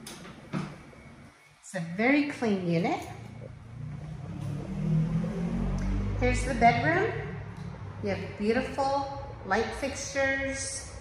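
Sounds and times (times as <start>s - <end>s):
vehicle engine humming: 3.2s - 11.0s.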